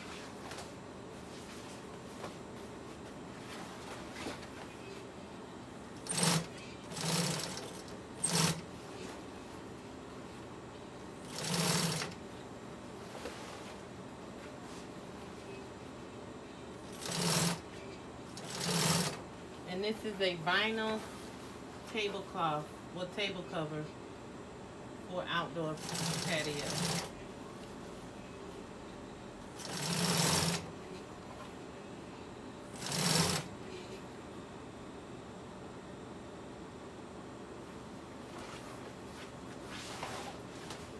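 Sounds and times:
industrial sewing machine stitching: 6.0 - 8.6, 11.3 - 12.2, 16.9 - 17.6, 18.3 - 19.2, 25.8 - 27.1, 29.6 - 30.7, 32.8 - 33.5.

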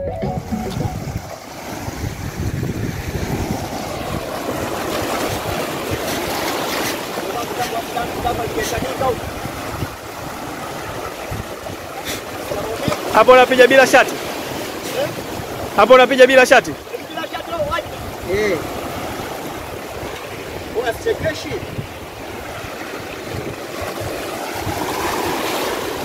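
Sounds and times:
surf washing over rocks: 0.4 - 26.0.

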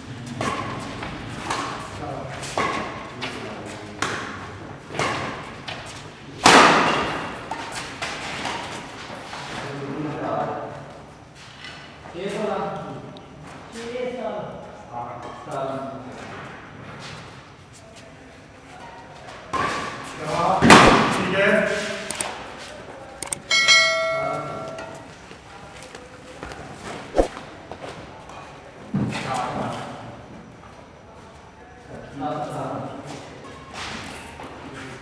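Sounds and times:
bell-like notification chime: 23.5 - 25.0.

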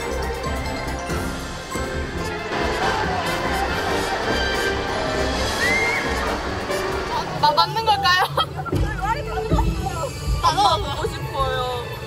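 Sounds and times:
background music: 0.0 - 12.0
young women shrieking: 5.5 - 6.1.

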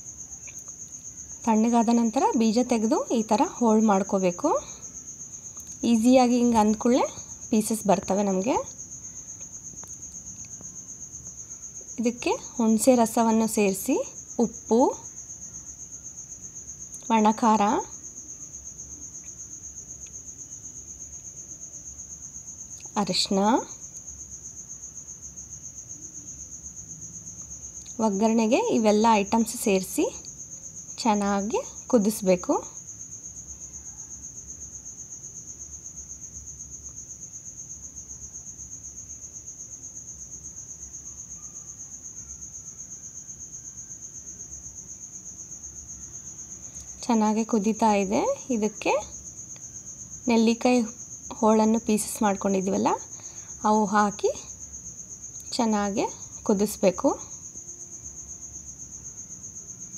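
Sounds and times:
cricket chirping: 0.0 - 59.9.

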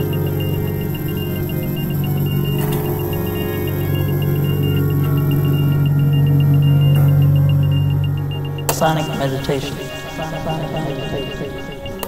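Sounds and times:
high pulsing tone: 0.0 - 12.0
low synthesizer drone: 0.0 - 12.0.

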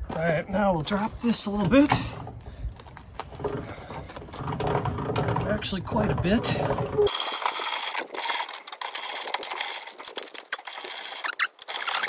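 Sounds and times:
jack metallic clicking and ratcheting: 4.6 - 12.0.

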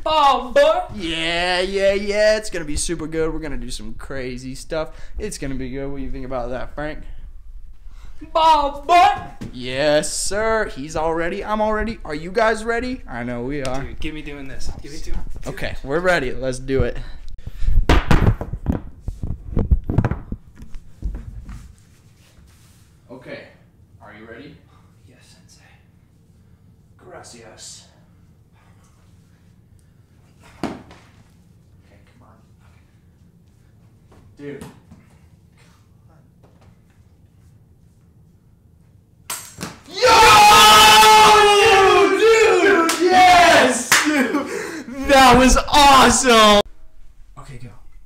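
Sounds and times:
men yelling: 39.9 - 46.7.

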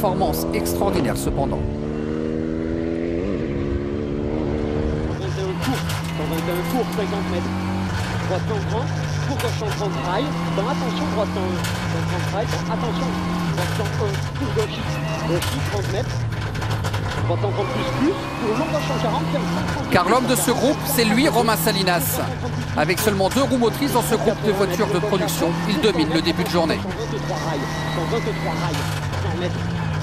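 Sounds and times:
rally car engine revving: 0.0 - 30.0.

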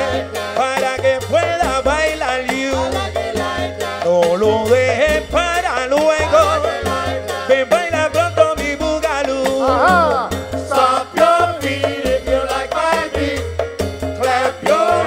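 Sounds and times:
man singing: 0.0 - 13.1
salsa band playing: 0.0 - 15.0.

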